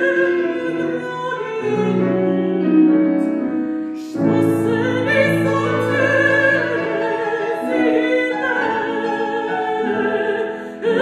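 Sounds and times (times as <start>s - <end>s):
grand piano accompaniment: 0.0s - 11.0s
woman singing operatically: 0.0s - 11.0s.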